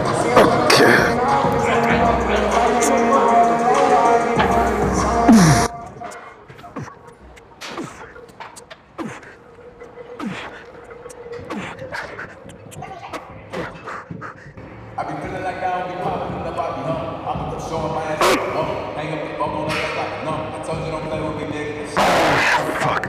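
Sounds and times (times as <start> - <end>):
background music: 0.0 - 13.7
man exhaling with effort: 5.3 - 5.7, 9.0 - 9.4.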